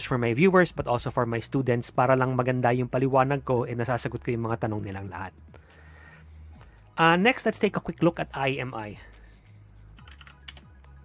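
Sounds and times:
faint keyboard keystrokes: 0:10.0 - 0:10.7.

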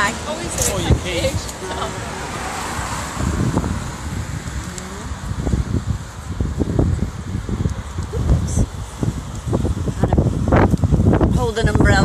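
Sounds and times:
steady outdoor noise: 0:00.0 - 0:12.0
wind buffeting microphone: 0:00.0 - 0:12.0.

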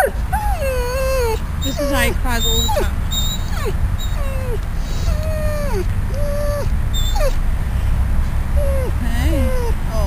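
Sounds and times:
dog whining: 0:00.0 - 0:07.4, 0:08.6 - 0:09.8.

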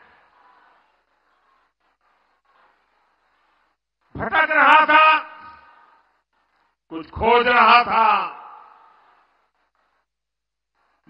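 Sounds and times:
man speaking over public address: 0:04.2 - 0:05.6, 0:06.9 - 0:08.7.

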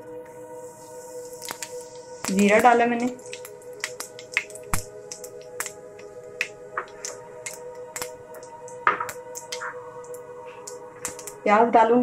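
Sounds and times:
background music: 0:00.0 - 0:12.0
seeds crackling in hot oil: 0:00.2 - 0:11.7.

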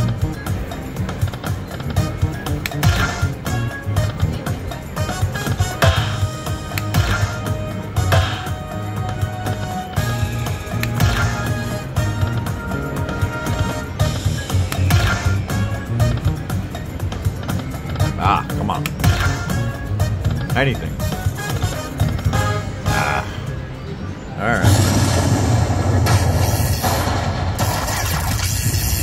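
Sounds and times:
slot machine bonus music: 0:00.0 - 0:29.0.

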